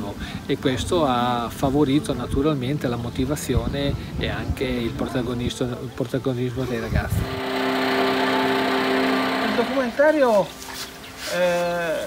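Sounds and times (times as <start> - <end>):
boat motor humming: 7.2 - 10.5.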